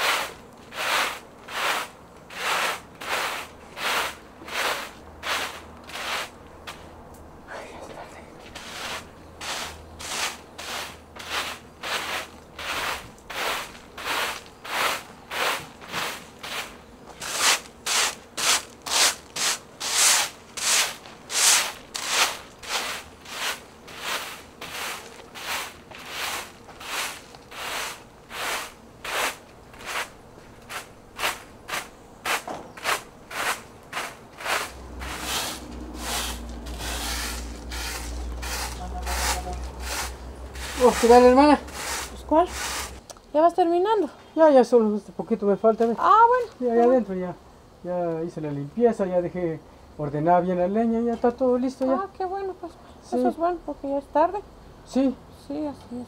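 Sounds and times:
broom sweeping: 0.0s - 6.9s, 8.4s - 43.0s.

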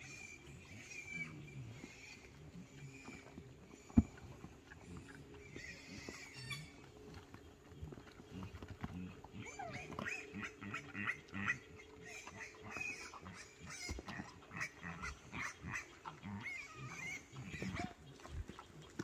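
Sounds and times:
pigs grunting softly: 0.0s - 19.0s.

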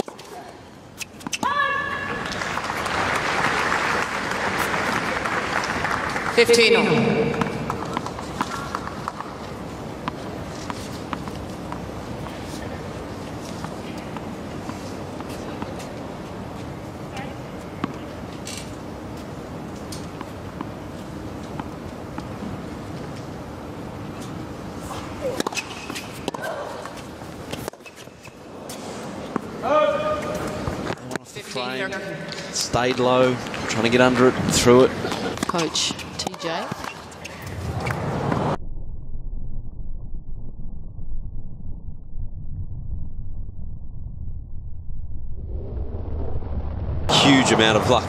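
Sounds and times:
tennis ball bounces: 6.8s - 12.6s, 25.2s - 28.2s, 35.1s - 37.2s
racquet hitting tennis ball: 7.0s - 9.2s
voices: 29.6s - 37.0s.

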